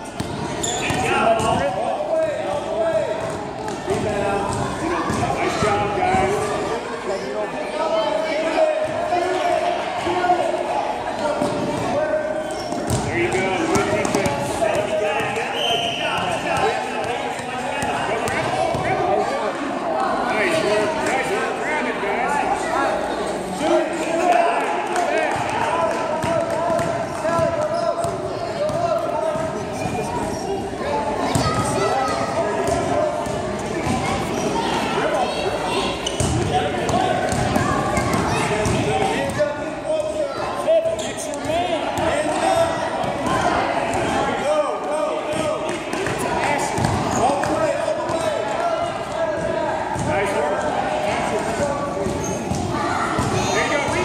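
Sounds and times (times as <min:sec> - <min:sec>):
spectators chatting: 0:00.0 - 0:54.0.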